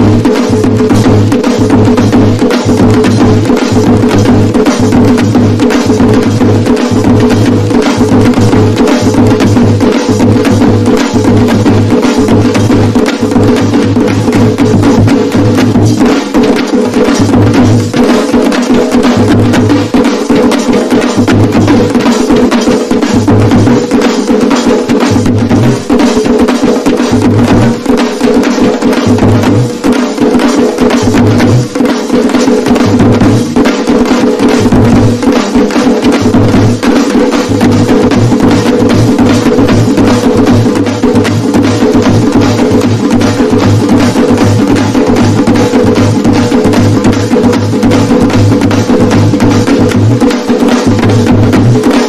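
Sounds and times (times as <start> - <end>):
fast dense percussion: 0.0 - 52.0.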